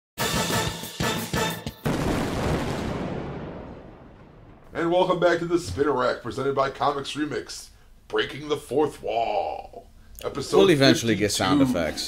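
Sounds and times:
cinematic impact with low rumble: 1.9s - 5.6s.

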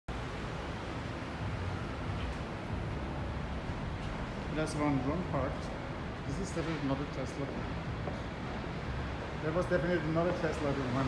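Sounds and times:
parking garage background noise: 0.1s - 11.0s.

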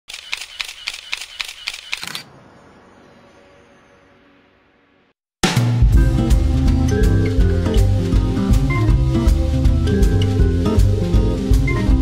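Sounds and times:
camera shutter clicking: 0.1s - 2.2s.

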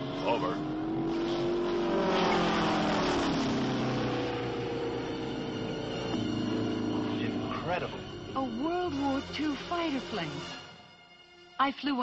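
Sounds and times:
propeller plane engine passing overhead: 0.0s - 8.4s.

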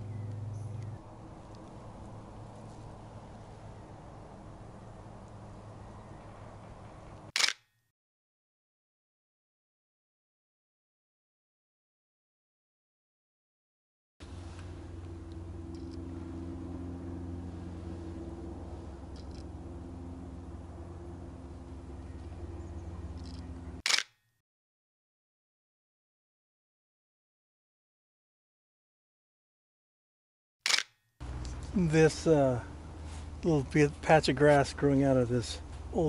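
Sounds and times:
steady low hum: 0.0s - 7.3s, 14.2s - 23.8s, 31.2s - 36.0s
outdoor background sound: 0.0s - 7.9s, 14.2s - 24.4s, 30.6s - 36.0s
camera shutter click: 7.4s - 7.7s, 23.2s - 24.2s, 30.7s - 31.0s.

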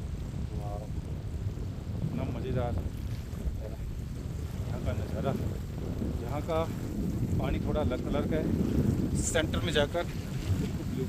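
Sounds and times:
small waves lapping: 0.0s - 11.0s
wind buffeting microphone: 0.0s - 11.0s.

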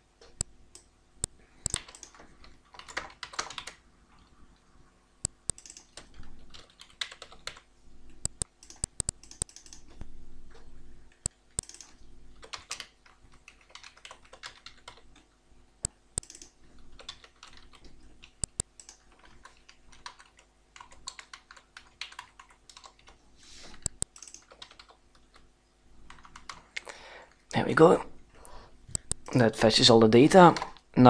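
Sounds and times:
typing on computer keyboard: 1.6s - 4.3s, 5.2s - 10.0s, 11.2s - 15.3s, 16.2s - 25.5s, 26.1s - 26.6s.

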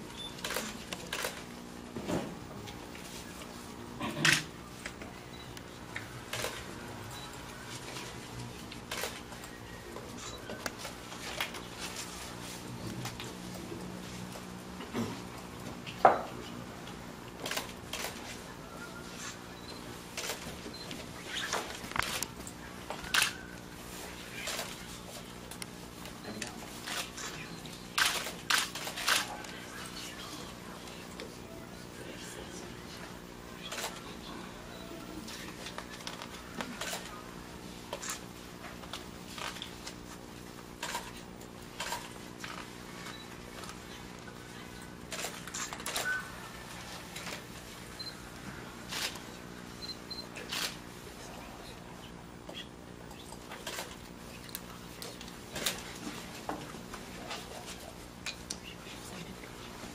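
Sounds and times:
faint murmur: 17.5s - 38.2s.

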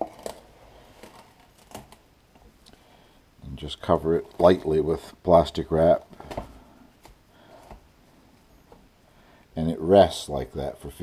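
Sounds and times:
plastic wrap crinkling: 0.0s - 2.7s, 3.7s - 5.2s.

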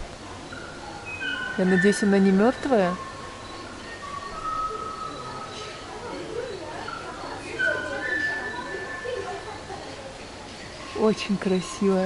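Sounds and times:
people talking faintly: 0.0s - 12.0s.

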